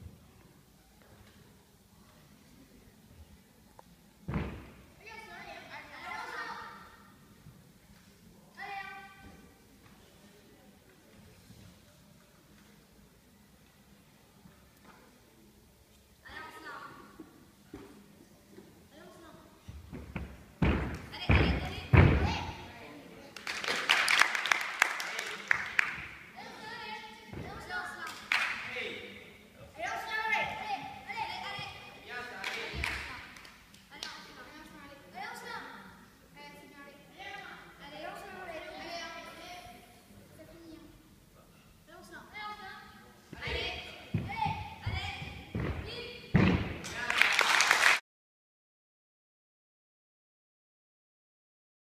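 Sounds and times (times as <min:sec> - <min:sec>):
gymnast landing thud: 0:04.3 - 0:04.9, 0:19.9 - 0:22.6, 0:43.3 - 0:46.8
voices echoing in hall: 0:20.6 - 0:47.6
onlookers clapping: 0:23.4 - 0:26.0, 0:46.8 - 0:48.0.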